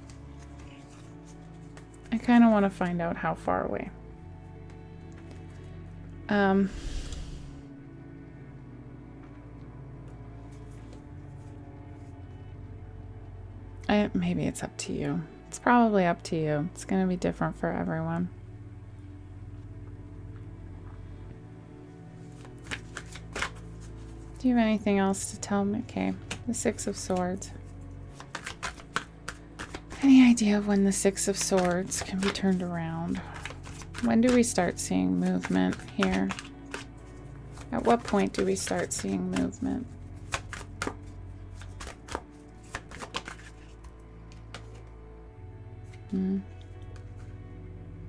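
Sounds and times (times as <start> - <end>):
cards being shuffled: 0.0 - 2.9, 4.6 - 5.7, 10.5 - 12.1, 22.2 - 24.4, 26.1 - 45.0, 45.8 - 47.4.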